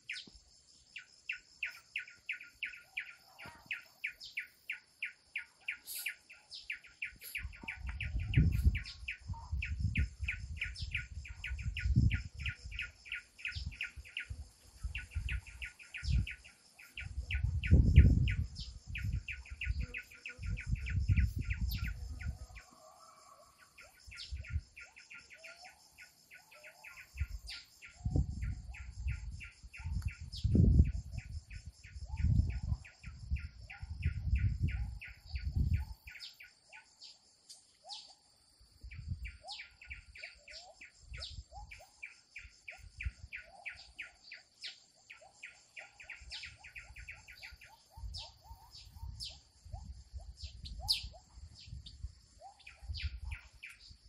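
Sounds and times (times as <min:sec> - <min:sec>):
small birds chirping: 0:00.0 - 0:54.0
steady high-pitched hiss: 0:00.0 - 0:54.0.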